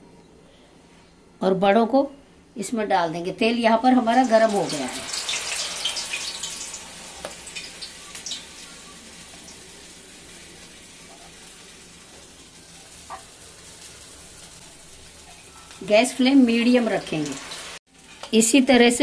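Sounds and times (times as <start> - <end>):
fritters sizzling in hot oil: 4.0 - 19.0.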